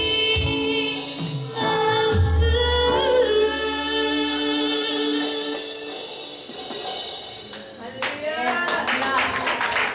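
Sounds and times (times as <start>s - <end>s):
congregation clapping: 7.5s - 9.9s.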